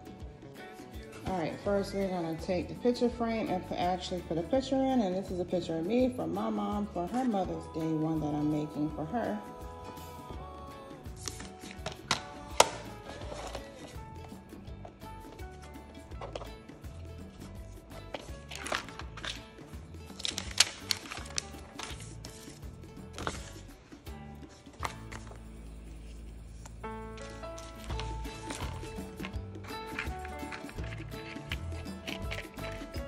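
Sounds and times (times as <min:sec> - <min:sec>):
background music: 0:00.0 - 0:33.0.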